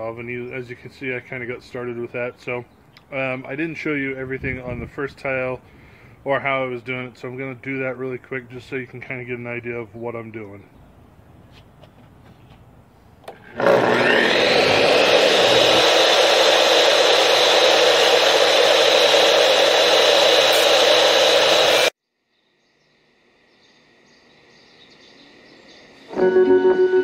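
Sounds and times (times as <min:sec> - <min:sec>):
tile saw whining and cutting: 0:13.2 - 0:22.0.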